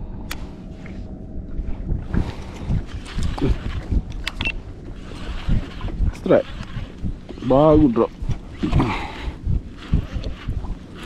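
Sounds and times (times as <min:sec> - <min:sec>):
wind buffeting microphone: 0:00.0 - 0:11.0
water lapping against kayak hull: 0:01.6 - 0:11.0.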